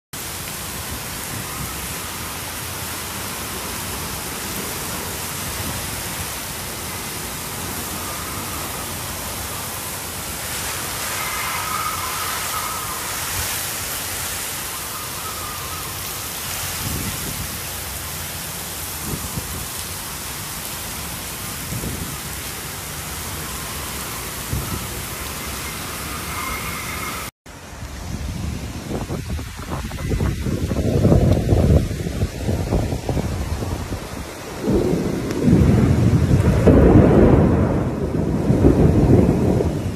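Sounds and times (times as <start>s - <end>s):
heavy rain rushing hiss: 0.2s - 39.9s
wind gusts buffeting microphone: 0.3s - 18.0s, 18.7s - 19.8s, 21.4s - 22.9s, 23.9s - 27.1s, 27.7s - 39.9s.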